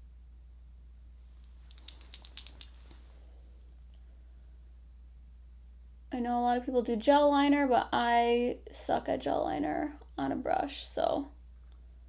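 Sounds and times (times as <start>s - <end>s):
low electrical hum: 0.0s - 12.0s
faint small clicks: 1.4s - 3.0s.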